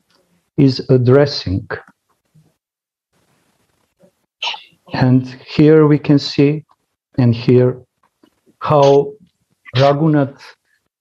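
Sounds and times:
man speaking: 0.6 - 1.9, 4.9 - 7.8, 8.6 - 10.6.

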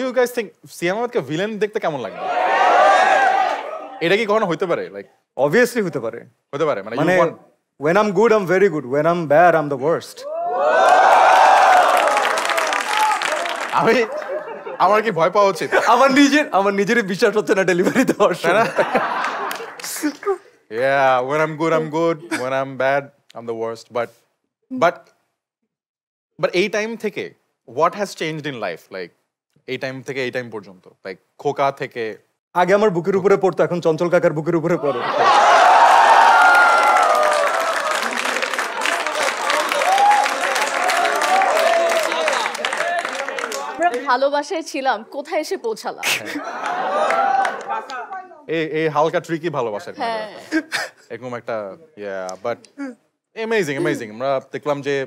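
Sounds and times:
audience clapping and cheering: 2.2 - 3.9, 10.3 - 15.2, 18.6 - 20.4, 35.2 - 44.2, 46.4 - 48.5.

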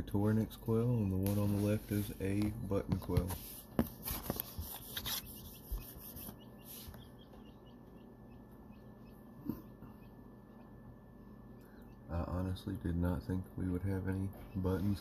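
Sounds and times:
chicks peeping: 0.0 - 15.0
handling knocks and rubs: 1.1 - 7.1.

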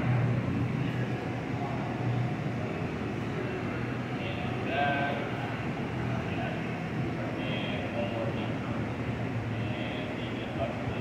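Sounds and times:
exhaust fans humming: 0.0 - 11.0
faint voices: 0.0 - 11.0
furnace burners roaring: 0.0 - 11.0.

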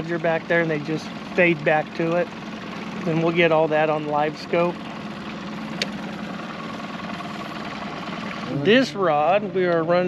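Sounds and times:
outboard motor running: 0.0 - 10.0.

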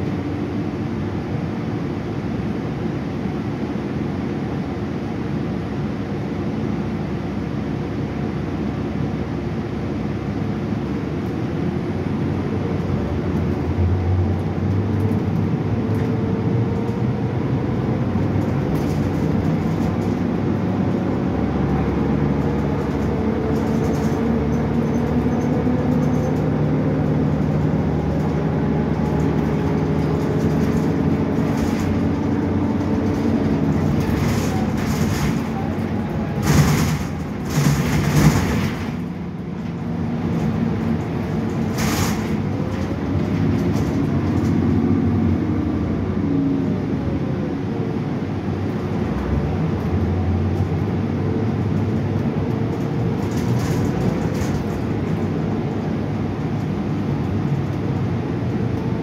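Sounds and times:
bus engine running: 0.0 - 59.0
noisy jolts: 36.3 - 39.0.

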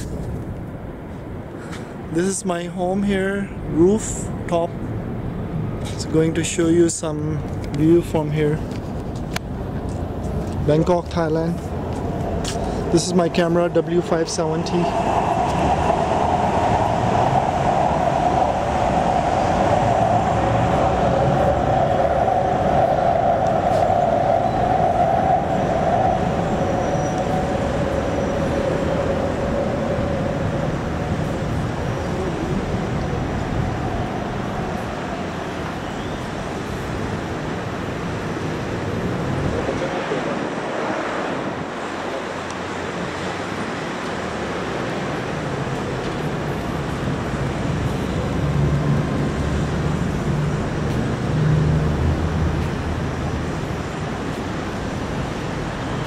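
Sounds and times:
road traffic noise: 0.0 - 56.0
elevated train whine: 11.6 - 56.0.

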